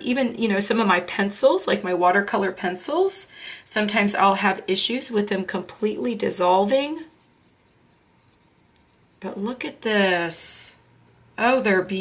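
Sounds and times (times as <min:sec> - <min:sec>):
brush bristles scratching paper: 0:06.7 - 0:09.6.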